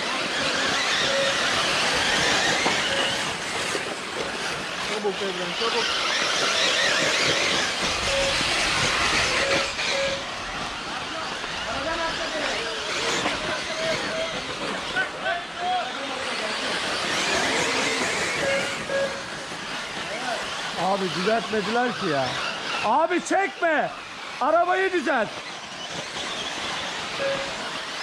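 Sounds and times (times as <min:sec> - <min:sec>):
people talking: 0:04.8 - 0:06.2, 0:10.8 - 0:19.2, 0:20.0 - 0:25.4.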